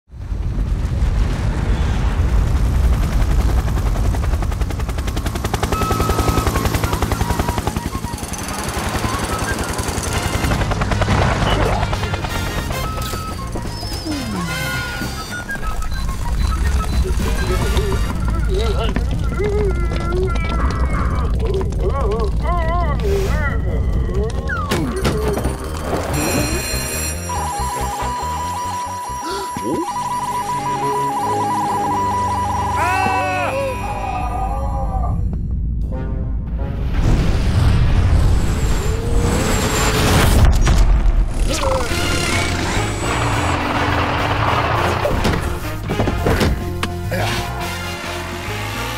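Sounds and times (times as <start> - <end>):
deep rumbling: 0.1 - 7.1, 13.4 - 26.7, 33.8 - 46.8
cartoon music: 11.4 - 35.2
steady electronic beeping: 12.8 - 21.1, 23.6 - 33.8.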